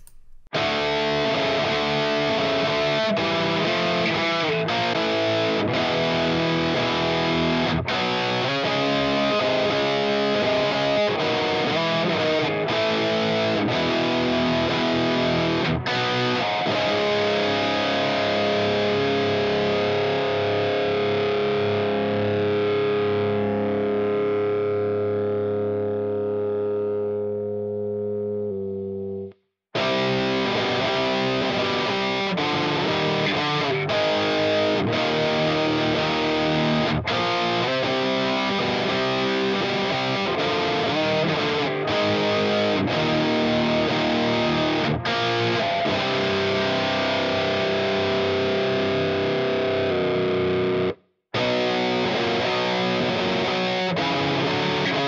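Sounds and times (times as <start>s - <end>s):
distorted electric guitar riff: 0.0s - 55.0s.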